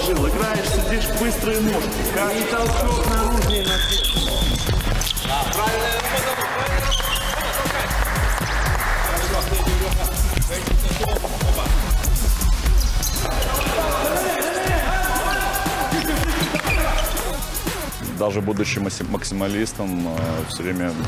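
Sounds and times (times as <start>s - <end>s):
background music: 0.0s - 21.0s
basketballs bouncing on hardwood floor: 2.7s - 7.3s
voices in gym: 13.1s - 19.4s.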